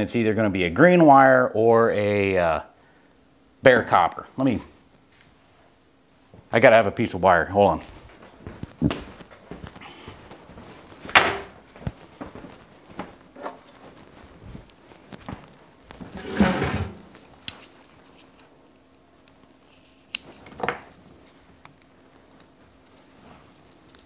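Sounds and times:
rustling scrape: 12.0s - 17.3s.

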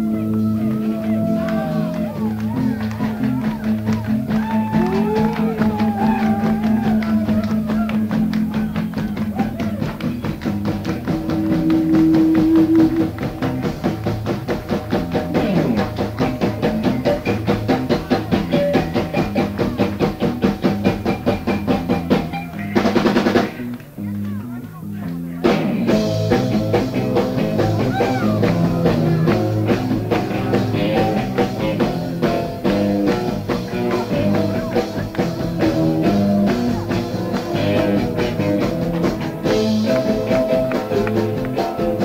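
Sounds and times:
rock band playing: 0.0s - 42.0s.

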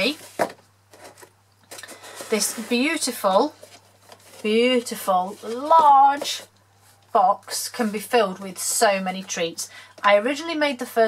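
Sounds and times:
papery handling sounds: 0.0s - 7.0s.

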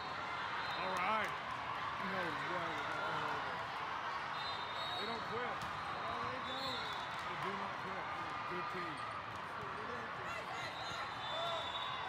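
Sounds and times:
many voices calling and talking: 0.0s - 12.0s.

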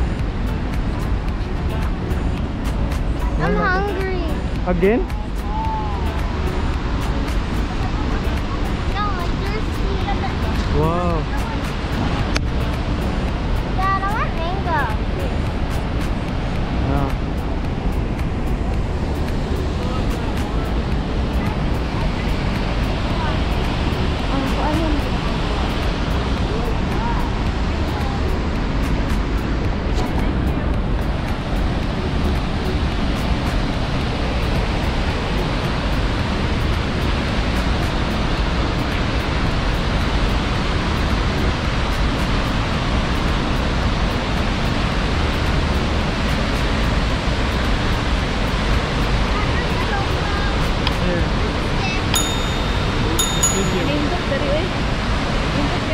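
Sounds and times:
waterfall rushing: 0.0s - 55.9s.

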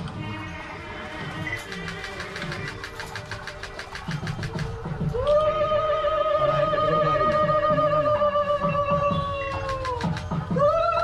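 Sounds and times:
fast drum strokes: 1.2s - 5.2s.

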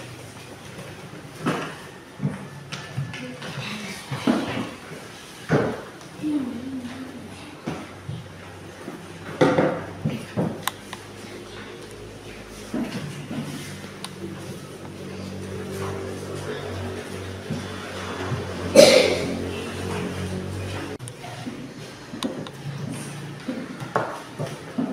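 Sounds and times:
knocks and rustles from desks: 0.0s - 6.2s, 7.6s - 18.8s, 19.9s - 24.9s
children's voices: 6.2s - 8.0s.

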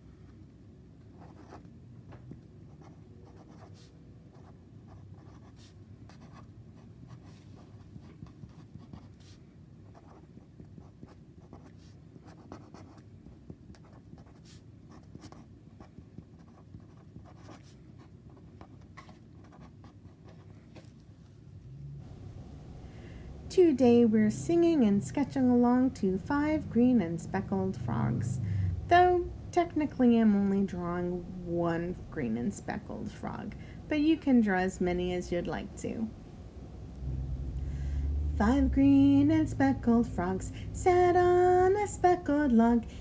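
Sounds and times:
low room hum: 0.0s - 43.0s
marker writing on paper: 2.7s - 6.5s, 7.1s - 20.5s.

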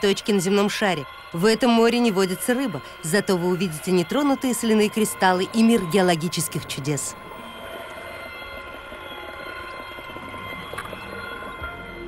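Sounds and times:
sustained drone music: 0.0s - 12.0s.

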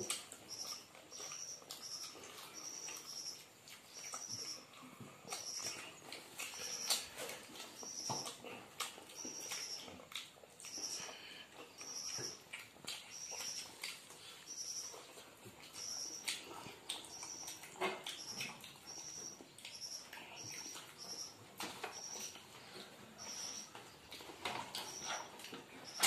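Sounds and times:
fingers mixing food clicks: 0.0s - 26.0s
wet chewing and lip-smacking: 0.0s - 26.0s.

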